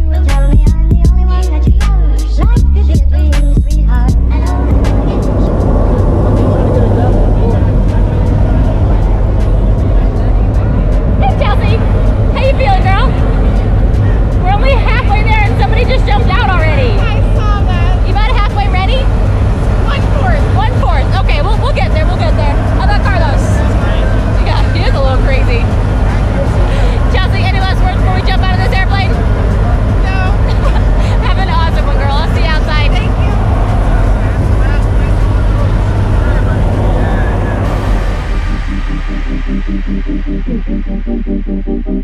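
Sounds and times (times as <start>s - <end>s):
people talking and calling out: 0.0s - 41.1s
plane engines and propellers droning: 3.9s - 42.0s.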